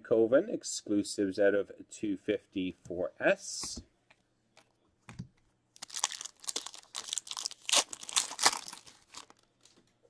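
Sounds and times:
foil wrapper crinkling and tearing: 5.8s - 9.7s.

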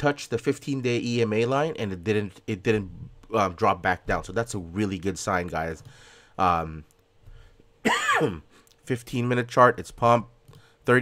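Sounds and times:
man clearing his throat: 7.8s - 8.5s.

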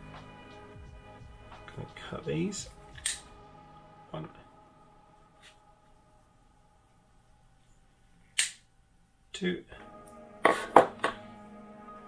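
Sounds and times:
side cutters snipping wire: 3.0s - 3.2s.

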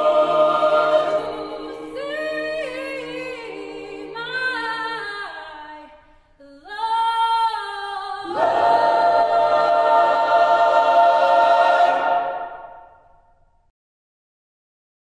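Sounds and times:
a cappella choir singing: 0.0s - 13.3s.

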